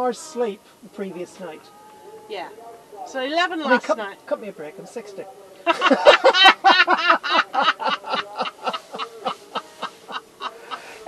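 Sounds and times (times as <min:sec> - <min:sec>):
women laughing heartily: 0:05.6 - 0:11.0.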